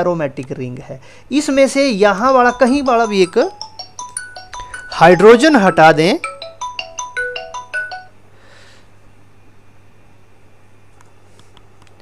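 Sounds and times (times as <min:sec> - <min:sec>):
electronic alert melody: 0:01.5 - 0:08.2.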